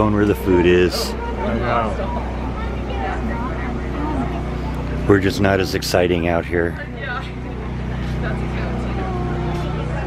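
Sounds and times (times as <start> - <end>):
people chattering: 0.0 - 10.0
steady low rumble: 0.0 - 10.0.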